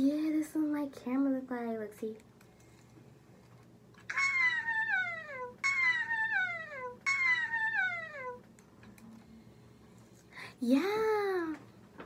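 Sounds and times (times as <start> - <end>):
high-pitched wailing cry: 4.1 - 8.5.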